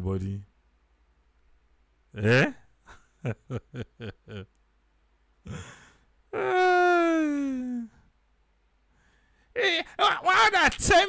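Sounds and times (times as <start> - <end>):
person sighing: 5.4 - 8.1
person speaking: 6.4 - 7.9, 9.6 - 11.0.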